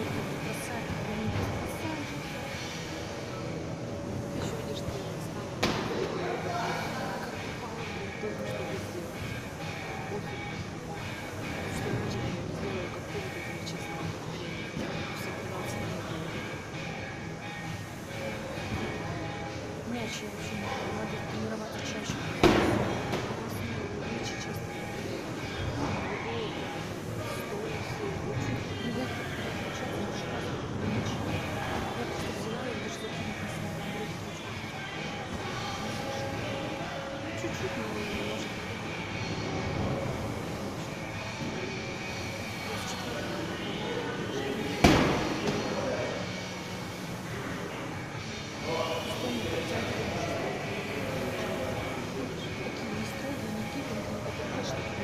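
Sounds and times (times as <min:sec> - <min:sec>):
murmur of voices: 0:00.0 - 0:55.0
medicine ball thud: 0:44.8 - 0:45.6.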